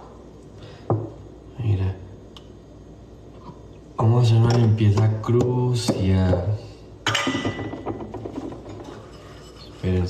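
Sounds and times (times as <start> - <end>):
dishes clattering in a sink: 7.1 - 9.9.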